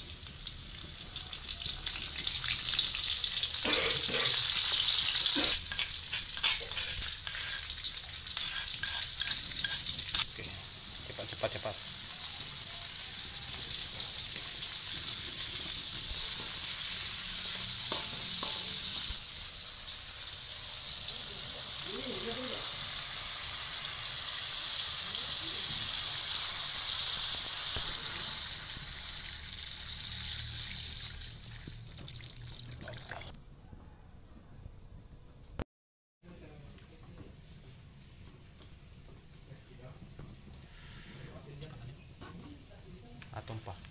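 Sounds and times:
vegetables sizzling in hot oil: 0.0s - 31.9s.

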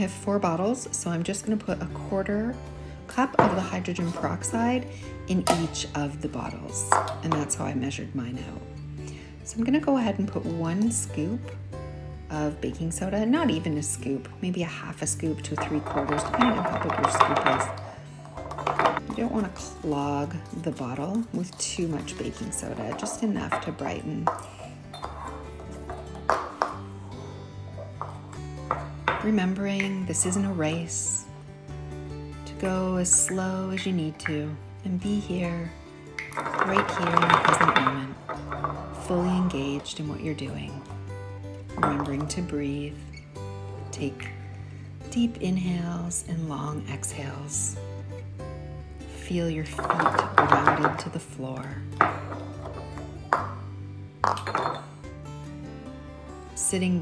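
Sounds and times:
soft background music: 0.0s - 57.0s
glass bottles clinking: 3.1s - 7.7s, 15.3s - 31.2s, 32.6s - 42.9s, 49.7s - 51.2s, 52.0s - 55.2s.

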